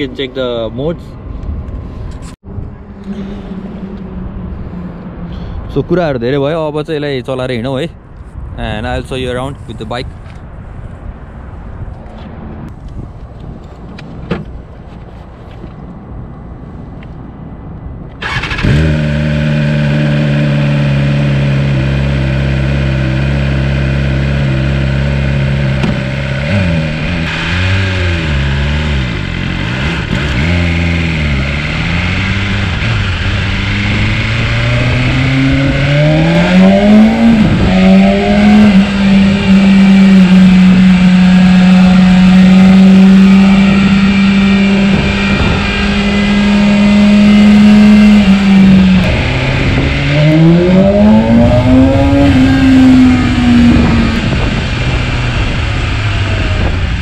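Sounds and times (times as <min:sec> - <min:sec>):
motorcycle engine revving: 0:18.2 - 0:57.0.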